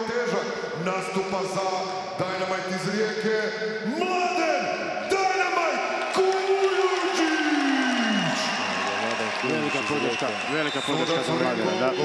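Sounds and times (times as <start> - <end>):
man announcing: 0.0 - 12.0.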